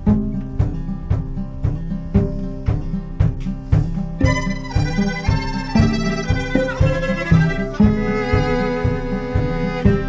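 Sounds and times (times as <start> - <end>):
plucked string pulse: 0.0 - 10.0
bowed violin: 4.2 - 10.0.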